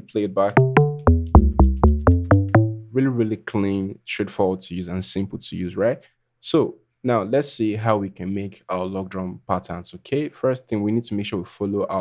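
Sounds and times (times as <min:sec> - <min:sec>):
deep pitched synth drum notes: 0:00.6 - 0:03.0.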